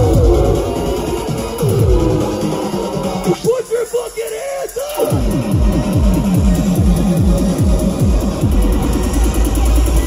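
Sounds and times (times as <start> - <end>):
dubstep music: 0.0 - 10.0.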